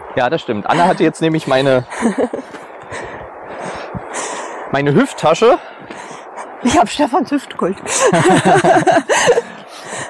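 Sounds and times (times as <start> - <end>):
person speaking: 0.6 - 2.4
breathy exhalations: 2.8 - 4.7, 5.6 - 6.6, 9.1 - 10.0.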